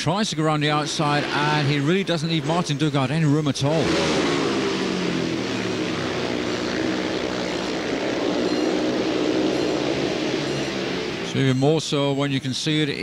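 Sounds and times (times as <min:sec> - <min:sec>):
motorcycle engines racing: 0:00.0 - 0:13.0.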